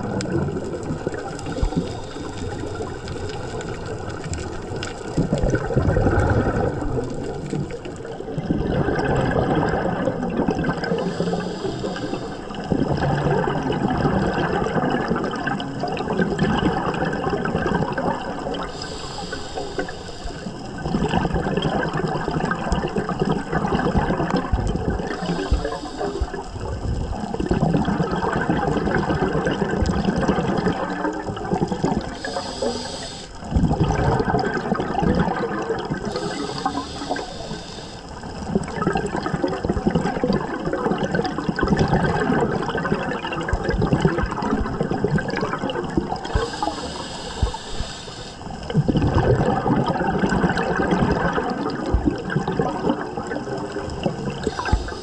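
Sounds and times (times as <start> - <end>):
exhaust bubbles bubbling: 0.0 - 18.9, 19.8 - 47.8, 48.5 - 55.0
regulator hiss on inhale: 1.2 - 5.2, 10.9 - 12.7, 18.6 - 20.8, 25.0 - 27.2, 31.9 - 33.5, 35.9 - 38.5, 46.2 - 48.7, 54.3 - 55.0.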